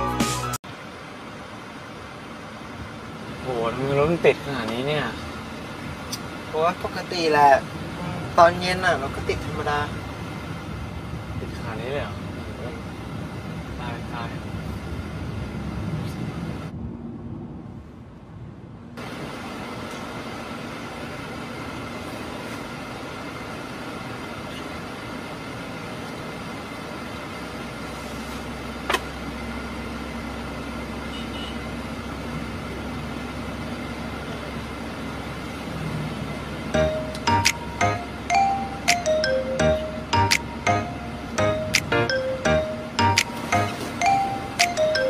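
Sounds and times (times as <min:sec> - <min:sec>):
engine and road hum: 0:00.0 - 0:45.0.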